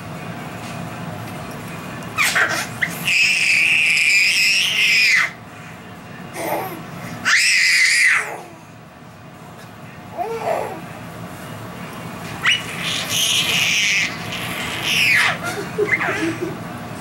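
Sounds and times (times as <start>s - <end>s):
baby squealing: 2.2s - 5.4s, 7.2s - 8.4s, 12.4s - 16.3s.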